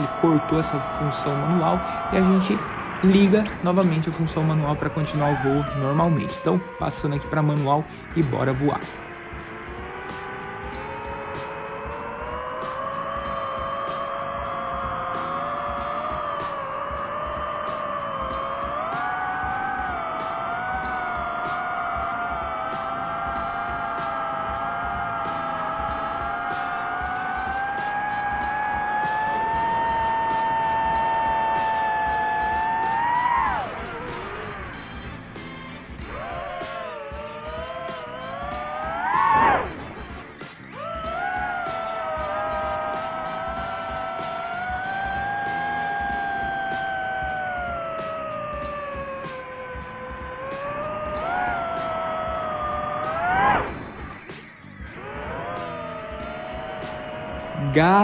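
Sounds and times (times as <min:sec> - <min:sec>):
drone propellers whining: 0:00.0 - 0:58.0.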